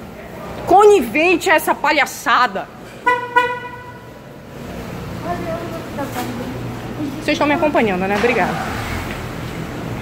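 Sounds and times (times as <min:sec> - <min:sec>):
car horn toots: 0:03.0 - 0:04.1.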